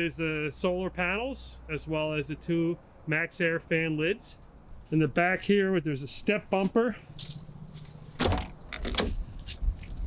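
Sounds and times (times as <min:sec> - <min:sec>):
door handle and latch rattling: 0:08.2 - 0:09.2.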